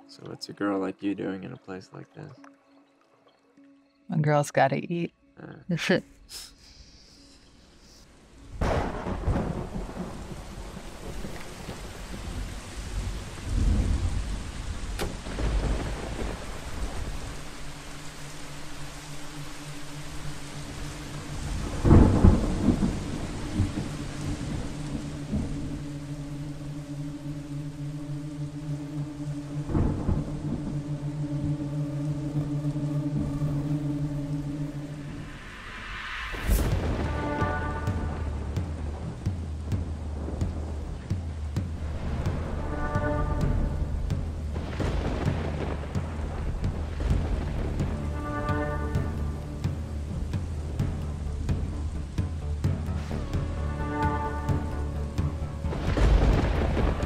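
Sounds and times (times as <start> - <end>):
steady rain: 5.8 - 57.0
rolling thunder: 8.5 - 17.8, 20.8 - 25.8, 35.0 - 57.0
low drone note: 14.9 - 39.3.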